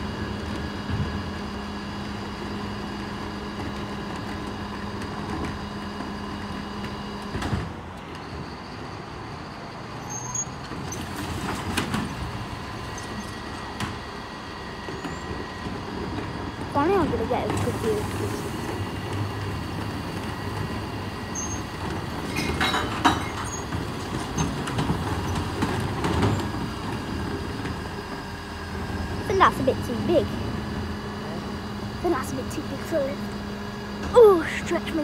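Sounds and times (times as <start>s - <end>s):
lorry engine running: 0.0s - 35.0s.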